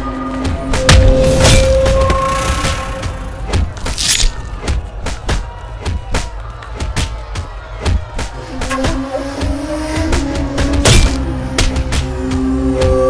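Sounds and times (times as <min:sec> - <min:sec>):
dramatic film score: 0:00.0 - 0:07.1, 0:07.8 - 0:13.0.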